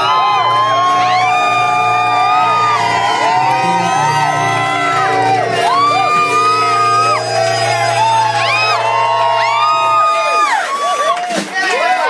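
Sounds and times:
jazz band playing: 0:00.0 - 0:10.2
held bass notes: 0:00.0 - 0:10.5
audience whooping and cheering: 0:00.0 - 0:12.0.

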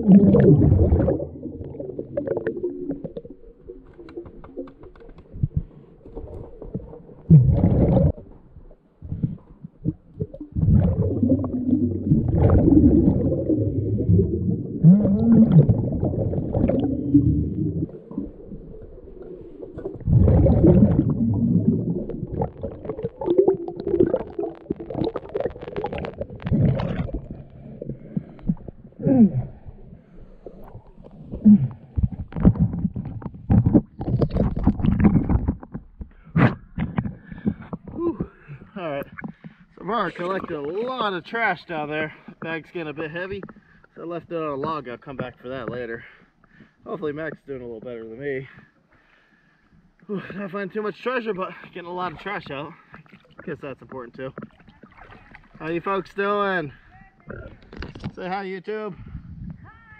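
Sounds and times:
muffled underwater bubbling: 0:00.0 - 0:40.9, 0:53.1 - 0:56.0.

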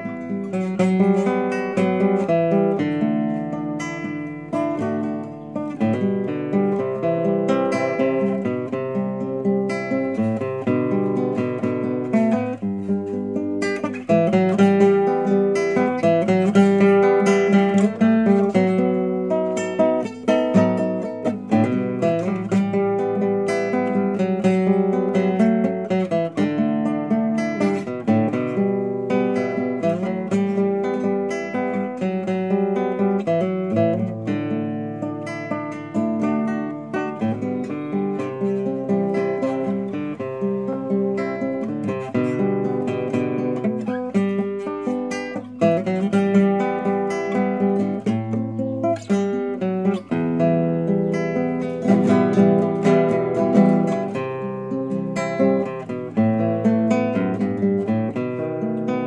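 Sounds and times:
acoustic guitar music: 0:00.0 - 0:59.0.

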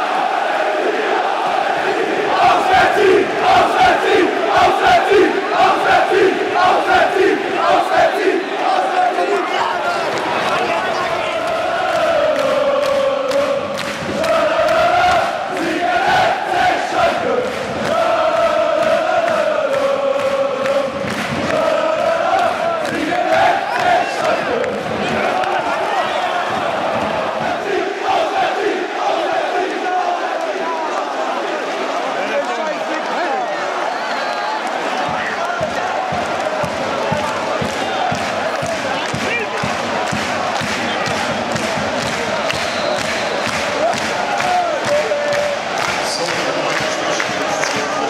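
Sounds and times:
crowd singing a chant: 0:00.0 - 0:32.4, 0:34.6 - 0:48.0
crowd chanting: 0:00.0 - 0:48.0
rhythmic clapping: 0:01.5 - 0:31.8, 0:34.6 - 0:48.0.

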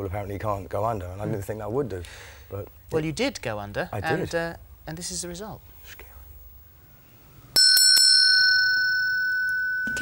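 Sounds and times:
small bell struck and ringing: 0:07.6 - 0:10.0.

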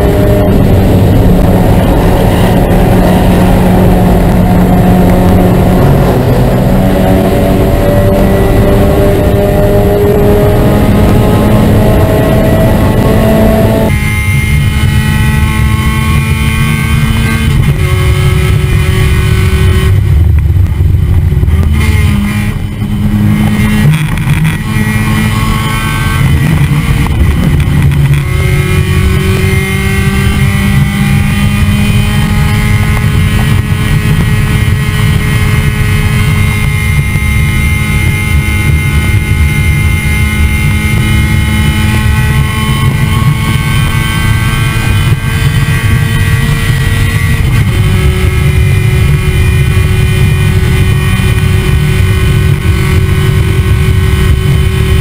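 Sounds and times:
heavy wind noise: 0:00.0 - 0:55.0
race car engine running hard: 0:00.0 - 0:55.0.

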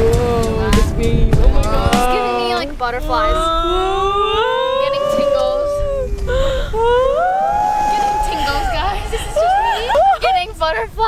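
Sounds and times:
woman exclaiming whoa: 0:02.1 - 0:06.1, 0:06.8 - 0:10.8.

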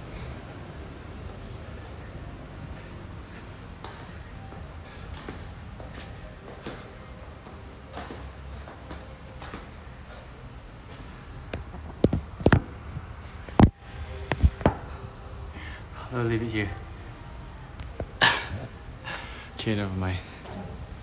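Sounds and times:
gym room noise: 0:00.0 - 0:19.6, 0:20.2 - 0:21.0.

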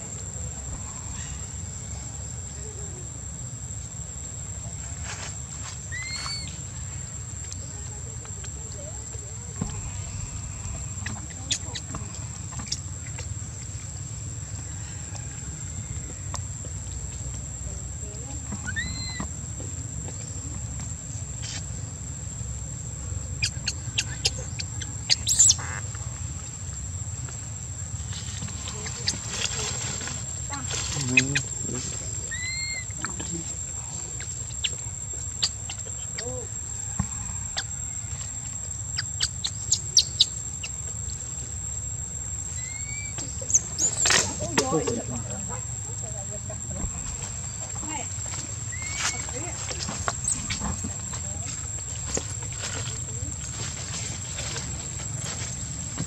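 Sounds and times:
high-pitched insect drone: 0:09.4 - 0:16.7, 0:22.3 - 0:56.0.

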